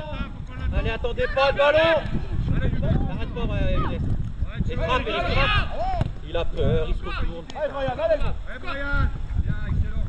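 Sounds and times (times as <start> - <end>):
wind rumbling on microphone: 0.0 - 10.0
man shouting: 4.8 - 6.0.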